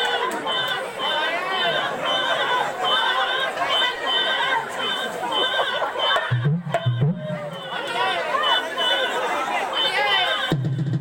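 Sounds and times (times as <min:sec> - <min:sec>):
crowd chatter: 0:00.0 - 0:11.0.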